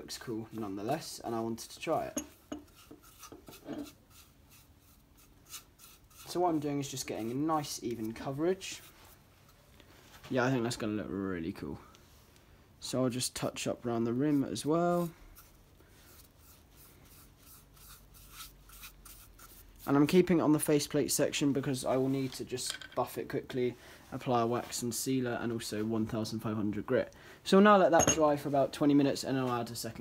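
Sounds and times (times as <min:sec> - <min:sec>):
paintbrush brushing on wood: 0:01.9 - 0:09.6, 0:14.1 - 0:20.1.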